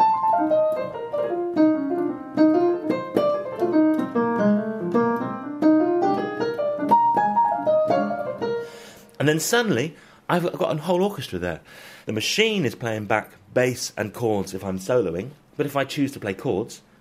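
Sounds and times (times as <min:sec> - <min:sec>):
piano melody over chords: 0:00.0 - 0:09.2.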